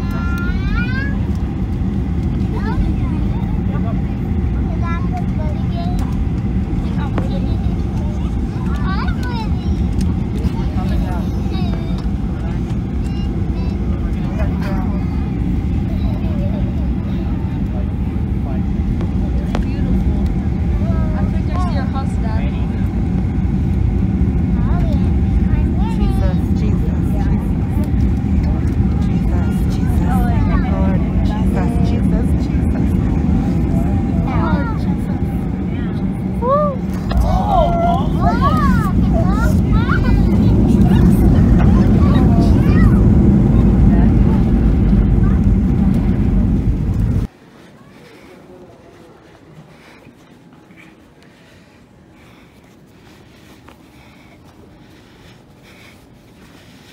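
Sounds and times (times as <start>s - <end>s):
faint passenger voices: 0.0s - 56.9s
jet engine cabin rumble: 0.0s - 56.9s.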